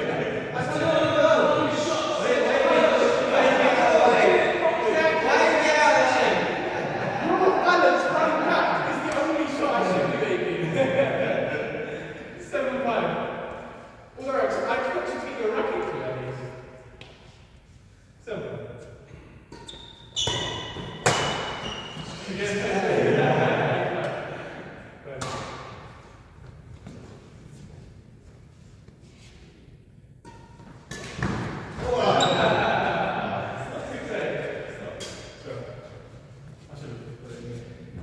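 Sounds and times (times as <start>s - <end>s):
players' voices: 0.0s - 16.8s, 21.1s - 25.8s, 30.9s - 38.0s
racket hitting shuttlecock: 19.5s - 22.0s, 25.2s - 25.9s, 30.2s - 31.9s.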